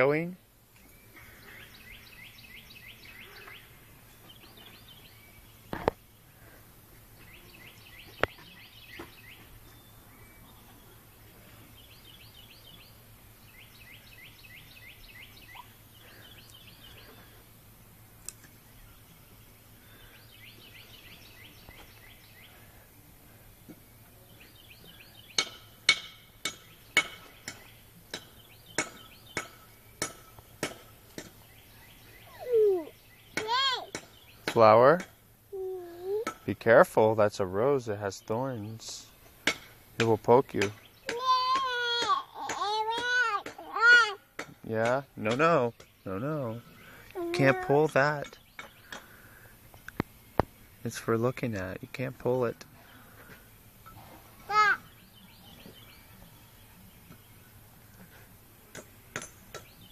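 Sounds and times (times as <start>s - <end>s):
bird chirping: 0.0s - 43.6s, 44.4s - 59.9s
outdoor background noise: 0.0s - 59.9s.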